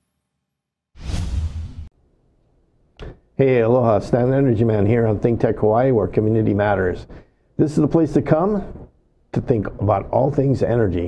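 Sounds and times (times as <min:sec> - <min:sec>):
deep transition whoosh: 0:01.0 - 0:01.9.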